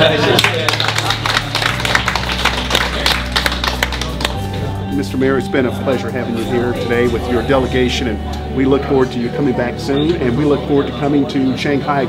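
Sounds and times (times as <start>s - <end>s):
small group applauding: 0.0s - 4.7s
background music with low notes: 0.0s - 12.0s.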